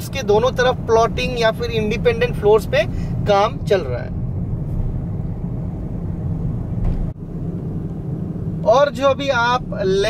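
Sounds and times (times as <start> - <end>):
car road and engine rumble: 0.0 - 10.0.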